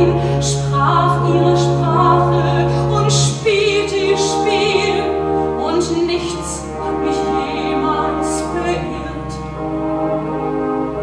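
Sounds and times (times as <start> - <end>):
woman singing: 0.0 - 9.4
musical accompaniment: 0.0 - 11.0.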